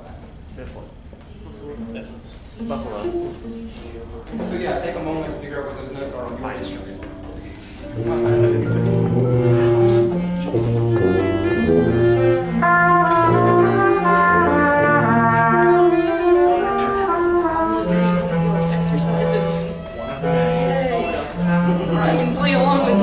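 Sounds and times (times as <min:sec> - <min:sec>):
band instruments playing held notes: 0:01.7 - 0:23.0.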